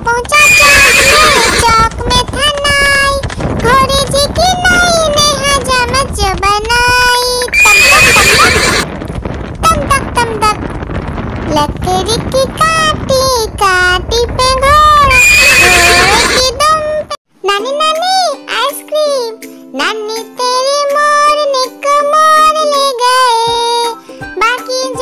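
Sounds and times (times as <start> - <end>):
horse whinnying: 0.4 - 1.7, 7.5 - 8.9, 15.1 - 16.4
person singing a children's rhyme: 16.1 - 25.0.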